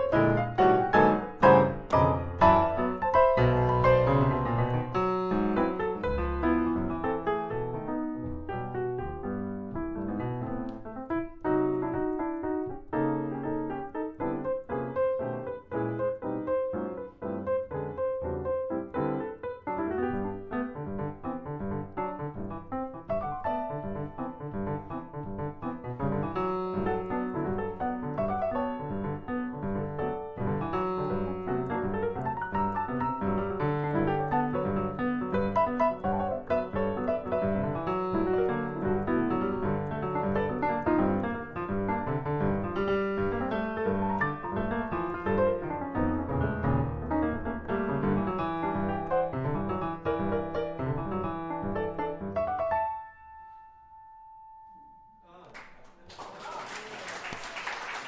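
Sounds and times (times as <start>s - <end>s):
solo jazz piano: 0.0s - 55.2s.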